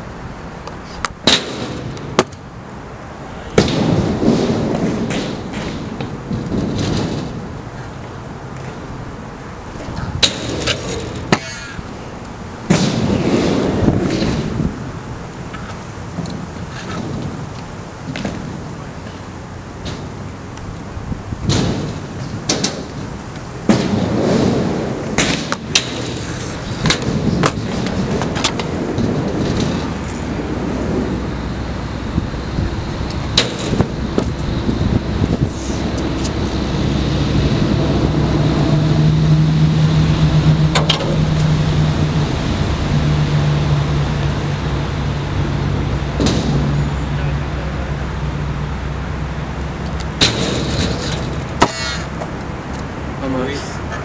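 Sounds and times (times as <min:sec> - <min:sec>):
scooter wheels rolling on concrete: 0:00.0 - 0:39.1
scooters clacking and banging: 0:03.6 - 0:39.0, 0:40.3 - 0:42.1, 0:49.0 - 0:54.0.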